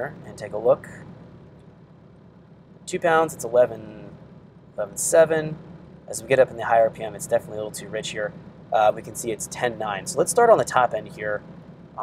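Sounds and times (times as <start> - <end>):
low steady hum: 0.0 - 12.0
man's voice: 2.9 - 4.1, 4.8 - 11.4.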